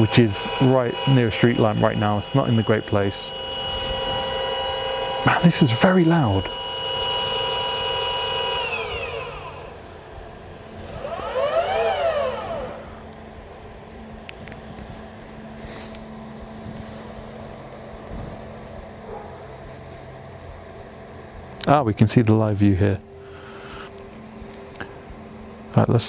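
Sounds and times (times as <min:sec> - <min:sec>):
telescope mount motors whining: 0:00.0 - 0:21.5, 0:22.8 - 0:26.0
faint low motor hum: 0:00.0 - 0:26.0.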